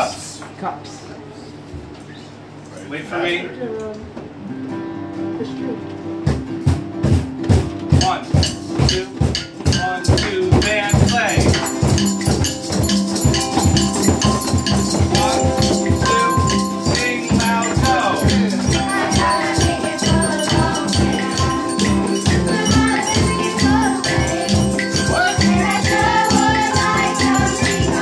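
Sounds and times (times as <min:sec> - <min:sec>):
acoustic guitar strumming: 0:04.3 - 0:28.0
hand drums: 0:06.3 - 0:28.0
ukulele strumming: 0:06.4 - 0:28.0
maracas: 0:07.9 - 0:28.0
children singing: 0:15.1 - 0:28.0.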